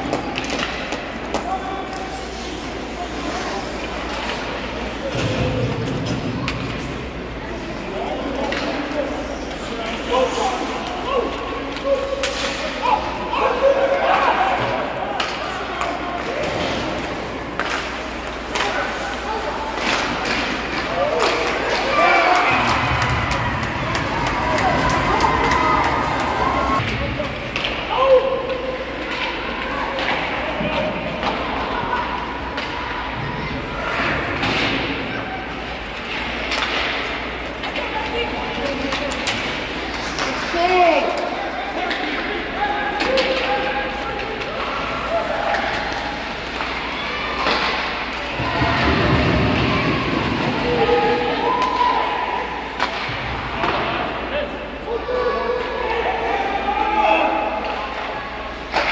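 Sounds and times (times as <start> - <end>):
hockey sticks and puck clacking: 0.0 - 33.3, 33.9 - 54.3, 57.2 - 58.9.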